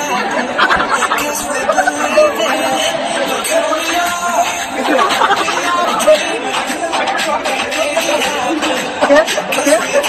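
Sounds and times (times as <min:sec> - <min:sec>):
music: 0:00.0 - 0:10.0
people talking and calling out: 0:00.0 - 0:10.0.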